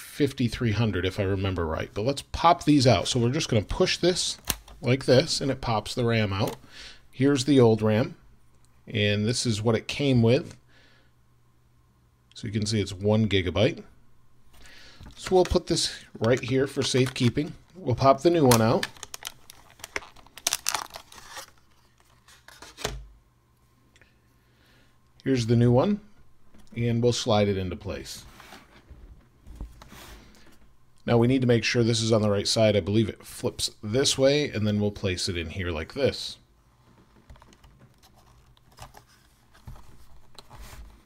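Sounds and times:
plastic packaging crackling: 15.1s - 23.0s
small clicks and scrapes: 36.9s - 40.9s.

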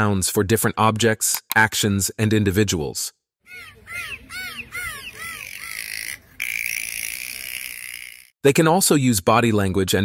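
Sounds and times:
dolphins squeaking: 3.5s - 8.3s.

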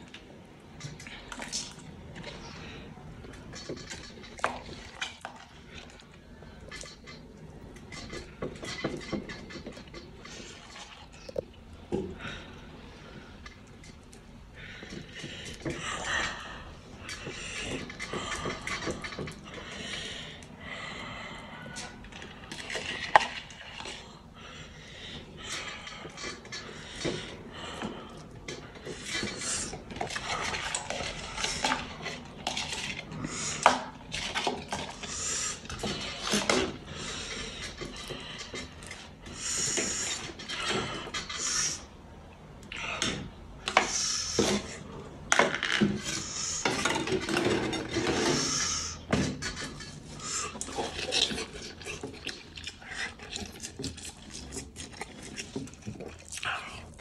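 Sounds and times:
spoon scraping plastic tub: 25.5s - 41.8s, 43.0s - 56.2s
metal spoon scraping tub: 43.1s - 55.8s.

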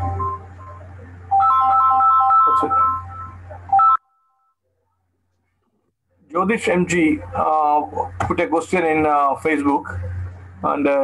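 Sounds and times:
electronic beeping melody: 0.0s - 4.6s.

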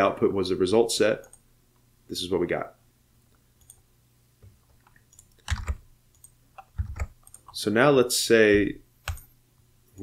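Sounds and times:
computer mouse clicks: 3.3s - 3.8s, 4.4s - 7.6s, 9.0s - 9.3s.

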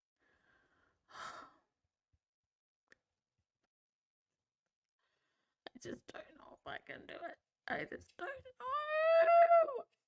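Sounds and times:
woman breathing in: 0.2s - 1.6s.

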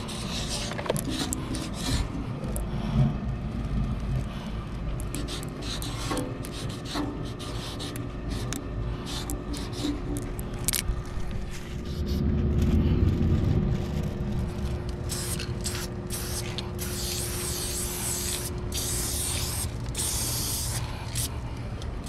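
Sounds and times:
spray paint can hissing: 0.0s - 2.1s, 5.1s - 10.0s, 15.1s - 21.3s
low rumble: 0.1s - 5.0s, 8.8s - 16.8s.

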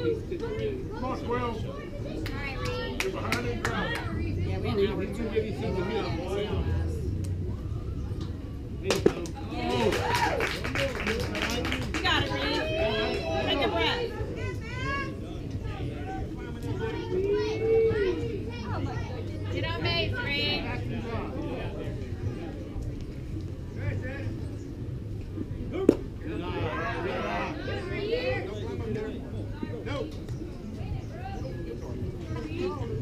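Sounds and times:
murmur of spectators' voices: 0.0s - 33.0s
spectators clapping: 2.2s - 4.1s, 8.9s - 12.8s.

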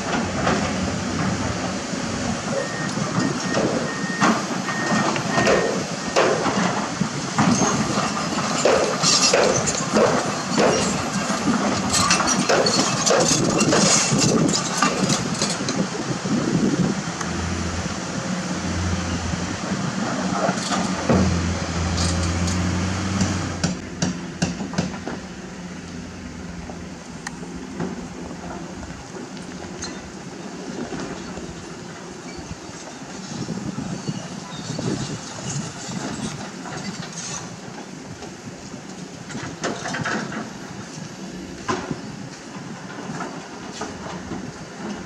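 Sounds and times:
excavator diesel engine: 0.0s - 45.0s
rocks knocking and clattering: 7.4s - 15.7s.

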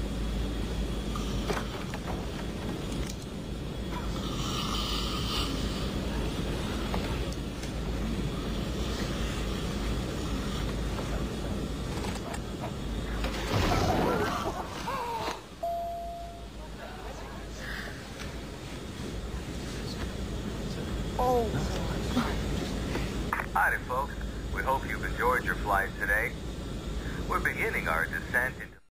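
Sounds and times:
vehicle engine rumble: 5.0s - 25.4s.

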